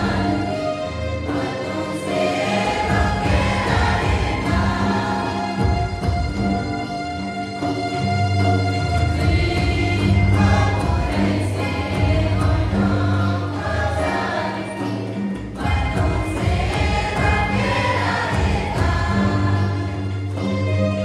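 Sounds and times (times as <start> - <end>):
women singing a hymn: 0.0 - 6.0, 9.1 - 20.2
low instrumental accompaniment: 0.0 - 21.0.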